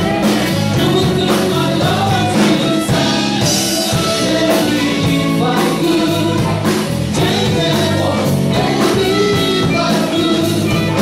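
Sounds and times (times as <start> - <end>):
bass guitar: 0.0 - 11.0
drums: 0.0 - 11.0
electric guitars: 0.0 - 11.0
man singing into a microphone: 0.0 - 11.0.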